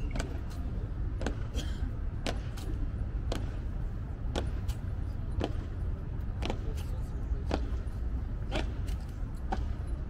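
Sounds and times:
steady low rumble: 0:00.0 - 0:10.0
boots striking stone paving: 0:01.2 - 0:01.6, 0:04.3 - 0:05.7, 0:06.4 - 0:07.9.

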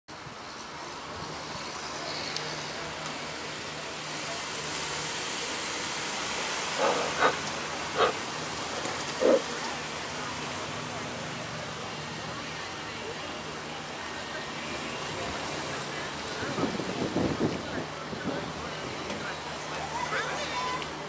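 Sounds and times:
cars passing: 0:00.1 - 0:21.0.

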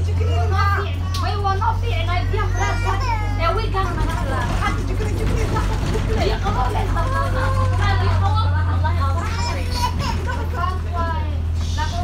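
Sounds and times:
bus engine drone: 0:00.0 - 0:12.0
passengers chattering: 0:00.0 - 0:12.0.

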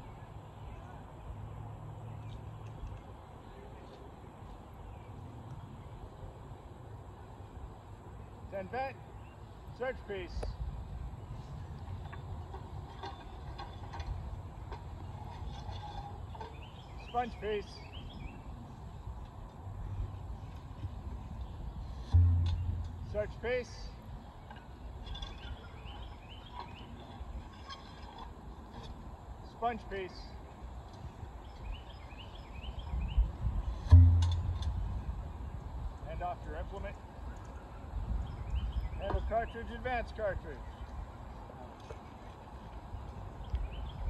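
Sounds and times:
low steady rumble: 0:00.0 - 0:44.0
metal clicks and scrapes: 0:12.0 - 0:16.8, 0:24.5 - 0:29.0
hollow low boom from barrel: 0:21.9 - 0:23.3, 0:33.7 - 0:35.2
faint bird chirps: 0:37.2 - 0:39.8.

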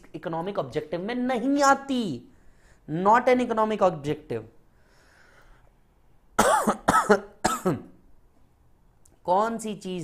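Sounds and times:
man coughing: 0:06.4 - 0:08.0.

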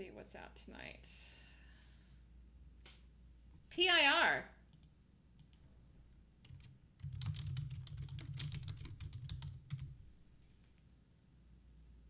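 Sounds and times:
keyboard typing: 0:06.4 - 0:10.0.

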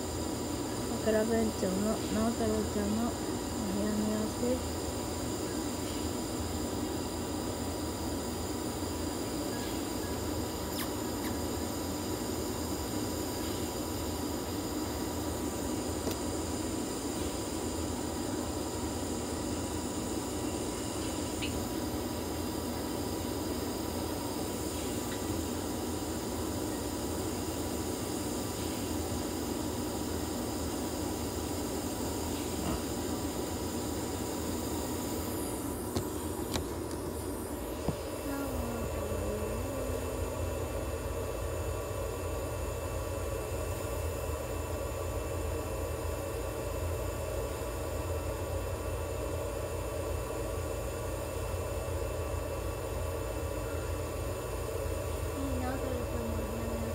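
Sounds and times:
incubator drone and hiss: 0:00.0 - 0:56.9.

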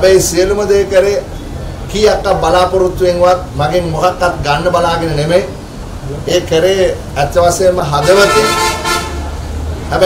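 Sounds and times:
man speaking: 0:01.9 - 0:09.1
steady horn-like tone: 0:08.0 - 0:09.4.

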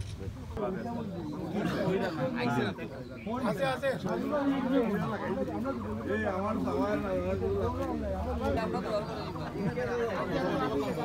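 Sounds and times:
men chattering: 0:00.2 - 0:11.0.

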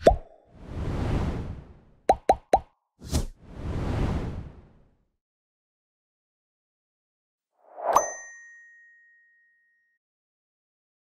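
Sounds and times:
whoosh: 0:00.6 - 0:02.0, 0:03.0 - 0:05.0.

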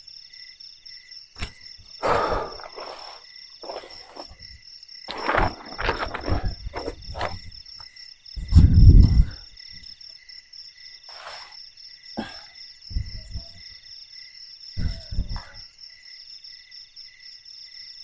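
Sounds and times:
crickets and insects trilling: 0:00.0 - 0:18.0
low thuds and rustles: 0:03.6 - 0:09.5, 0:12.9 - 0:13.7, 0:14.8 - 0:15.6
rumble: 0:04.2 - 0:07.7, 0:08.4 - 0:09.6, 0:12.9 - 0:13.6, 0:14.8 - 0:15.6.

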